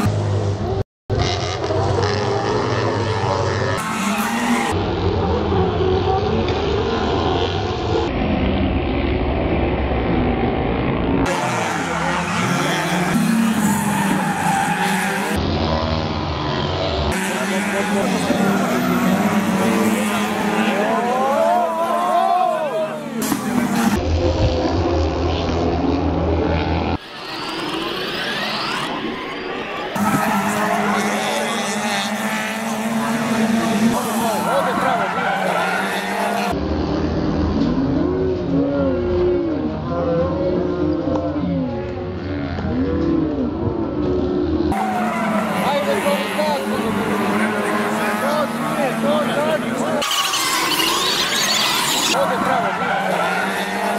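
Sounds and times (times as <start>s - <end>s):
race car engines droning: 0.0s - 53.9s
voices: 11.2s - 15.4s, 17.1s - 24.2s, 27.0s - 36.6s, 37.7s - 53.9s
short tyre squeals: 49.8s - 53.9s.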